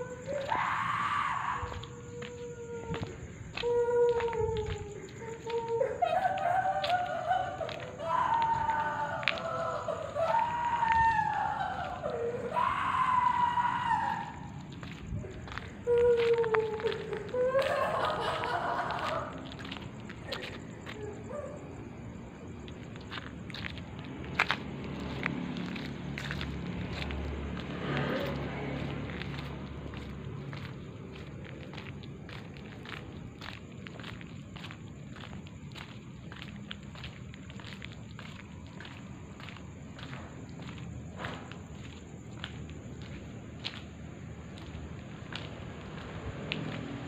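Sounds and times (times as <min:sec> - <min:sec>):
long wailing cries: 0:00.0 - 0:21.8
footsteps on hard path: 0:00.4 - 0:12.8, 0:14.1 - 0:21.0, 0:22.6 - 0:47.0.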